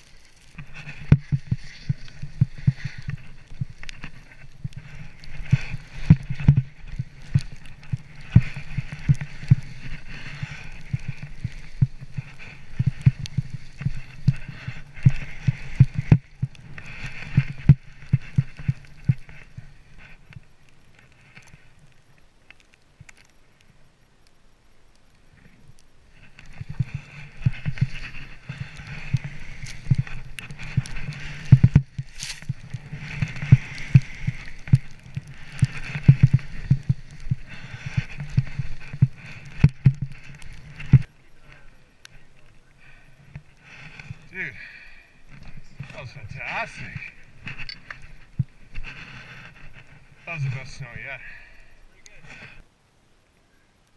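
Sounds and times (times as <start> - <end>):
skis hissing through snow: 0.0 - 20.0, 26.0 - 41.6, 48.5 - 52.6
skis thumping and knocking: 0.5 - 19.4.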